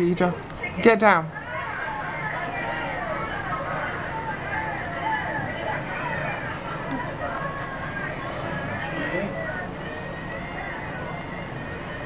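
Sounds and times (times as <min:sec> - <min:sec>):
indistinct background talking: 0:00.0 - 0:12.0.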